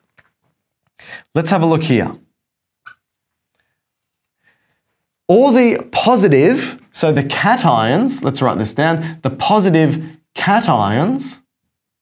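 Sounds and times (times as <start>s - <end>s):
man speaking: 1.2s - 2.3s, 5.3s - 11.5s
marker squeaking on whiteboard: 2.8s - 3.5s.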